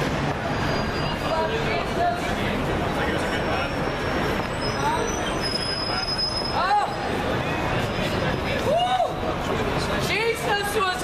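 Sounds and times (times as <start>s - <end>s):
street crowd hubbub: 0.0s - 11.0s.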